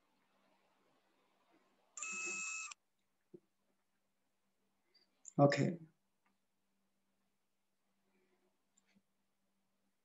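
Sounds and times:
short electronic tone with hiss: 2.0 - 2.8.

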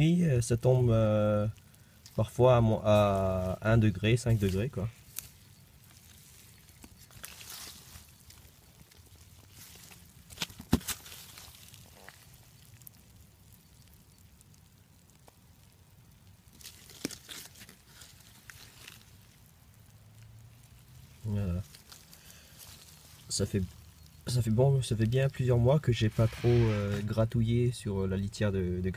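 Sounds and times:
compost rustling and crackling: 0.0 - 28.9.

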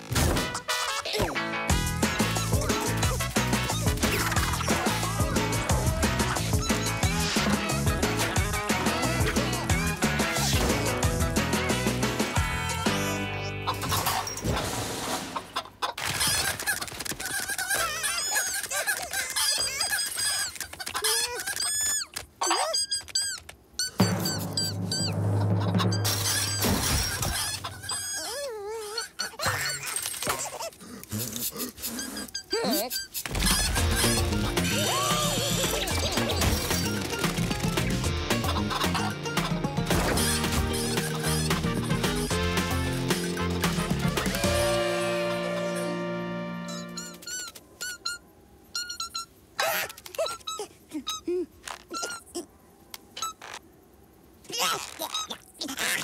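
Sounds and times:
cartoon squeaks and squeals: 0.4 - 1.4, 2.1 - 14.5, 15.8 - 37.8, 39.9 - 42.4, 43.1 - 44.8, 46.6 - 52.5, 53.1 - 53.7, 54.5 - 56.0
cartoon chick peeps: 15.6 - 29.8, 46.6 - 48.2, 48.8 - 52.5, 53.2 - 53.6, 54.5 - 56.0
warbling squeal: 23.8 - 28.3
held music chord: 44.4 - 47.1.

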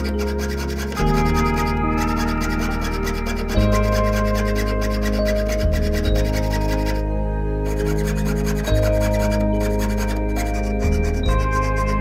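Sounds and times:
background music with sustained tones: 0.0 - 12.0
saw blade cutting metal sheet: 0.0 - 12.0.

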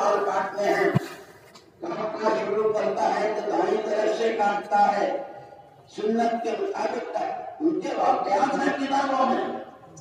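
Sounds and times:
man's voice over public address: 0.0 - 10.0.

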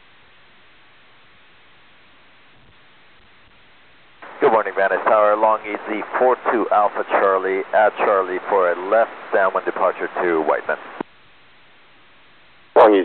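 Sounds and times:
steady radio hiss: 0.0 - 13.0
voice over tinny radio: 4.2 - 11.0, 12.8 - 13.0.

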